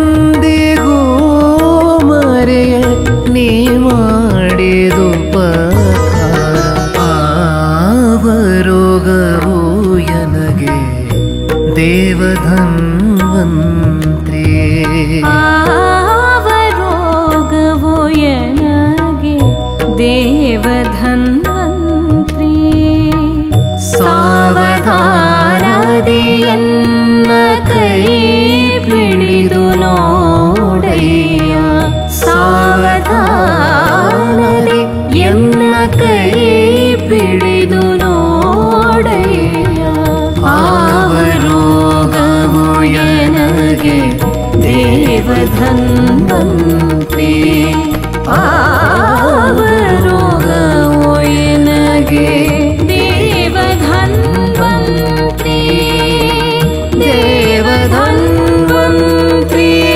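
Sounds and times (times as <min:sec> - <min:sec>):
held instrumental drone: 0:00.0 - 0:16.7
sarangi and keyboard: 0:00.0 - 0:59.9
woman singing devotional song: 0:00.0 - 0:59.9.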